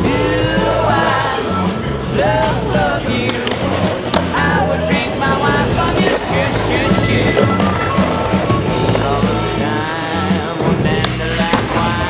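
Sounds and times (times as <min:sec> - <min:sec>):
skateboard rolling on concrete: 0:00.0 - 0:12.0
song with steady beat: 0:00.0 - 0:12.0
skateboard clacks: 0:02.2 - 0:12.0.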